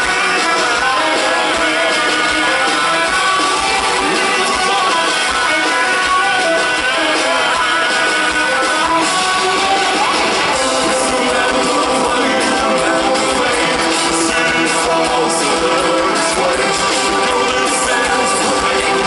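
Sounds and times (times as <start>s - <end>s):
drums: 0.0s - 19.0s
electric guitars: 0.0s - 19.0s.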